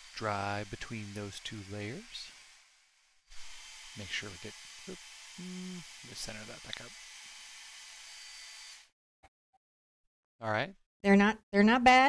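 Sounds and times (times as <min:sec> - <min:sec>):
hair dryer blowing: 0:00.0 - 0:02.6, 0:03.3 - 0:08.9.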